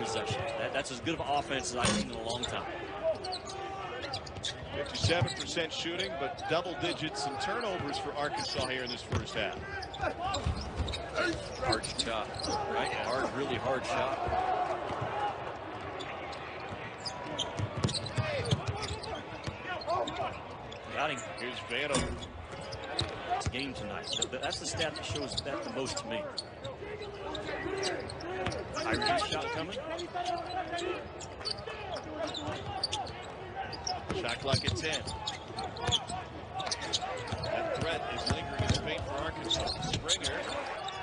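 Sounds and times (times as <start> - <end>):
sneaker squeaks: 0.2 - 13.4, 16.0 - 41.0.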